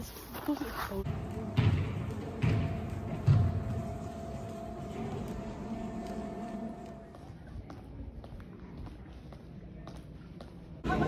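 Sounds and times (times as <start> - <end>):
steady hum: 1.0 - 9.0.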